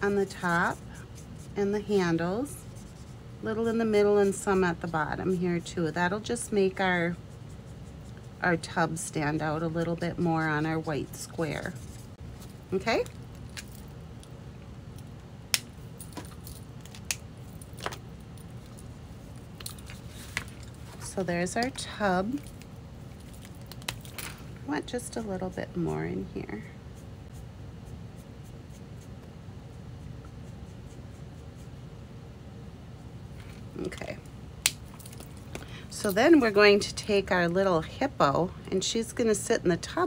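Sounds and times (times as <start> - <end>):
room hum: 0.0 - 40.0.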